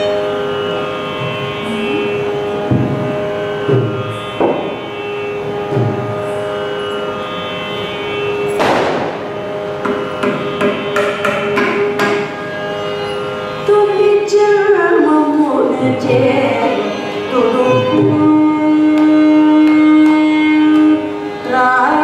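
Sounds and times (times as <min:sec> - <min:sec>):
steady drone: 0:00.0 - 0:19.8.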